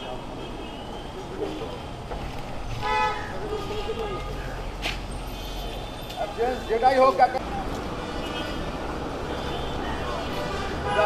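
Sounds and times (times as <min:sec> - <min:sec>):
street traffic rumble: 0:00.0 - 0:11.0
vehicle horn toot: 0:02.8 - 0:04.4, 0:08.1 - 0:08.7, 0:09.3 - 0:11.0.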